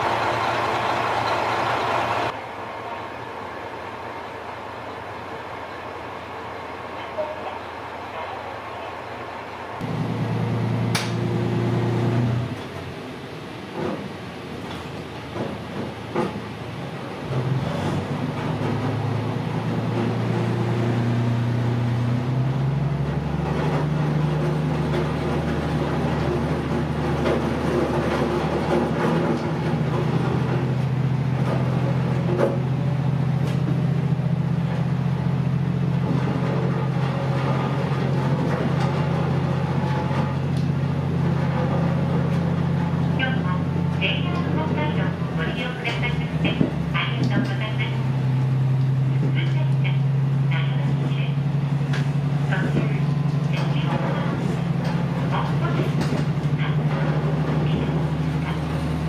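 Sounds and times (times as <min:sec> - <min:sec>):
diesel train engine drone: 0:00.0 - 0:59.0.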